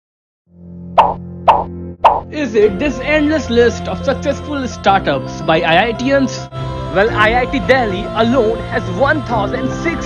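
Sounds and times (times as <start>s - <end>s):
sharp pop sound effects: 1.0s - 2.3s
low steady music bed: 1.3s - 10.0s.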